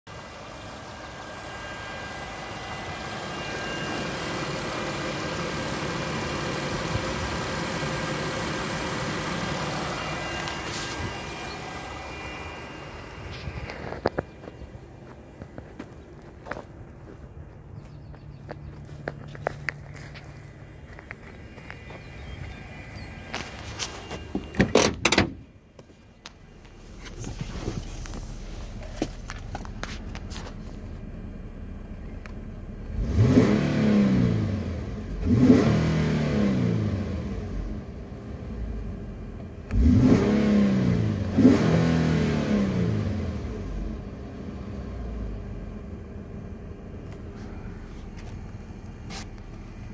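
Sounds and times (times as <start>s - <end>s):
car engine idling: 0.0s - 35.6s, 36.8s - 40.2s, 42.2s - 49.9s
engine revving: 32.7s - 38.9s, 39.7s - 45.5s.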